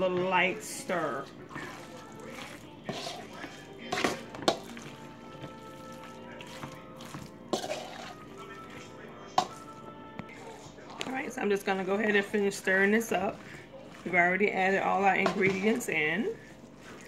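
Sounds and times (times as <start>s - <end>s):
background music with held notes: 0.0s - 17.0s
spoon clinking in metal bowl: 5.8s - 9.8s.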